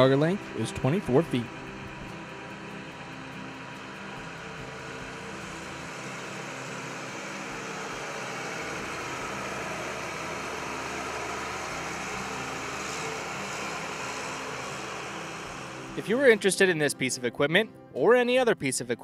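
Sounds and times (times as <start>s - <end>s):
diesel engine running: 0.0s - 17.0s.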